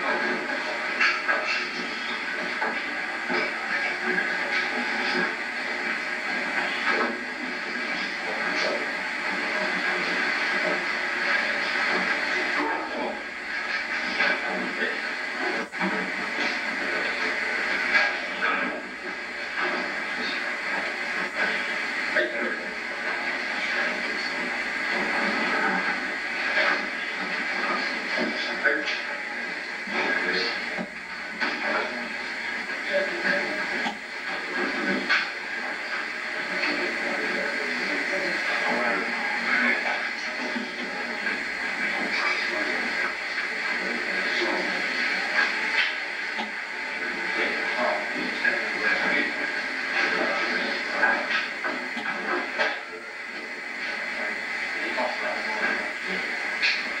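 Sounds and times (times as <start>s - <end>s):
muffled indistinct voices: 0.0s - 57.0s
videotape hiss: 0.0s - 57.0s.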